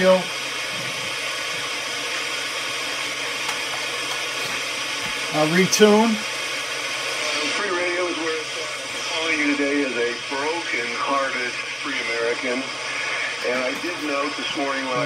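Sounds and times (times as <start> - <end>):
radio talk voice: 0.0 - 1.7, 4.2 - 6.3, 7.1 - 15.0
radio static hiss: 0.0 - 15.0.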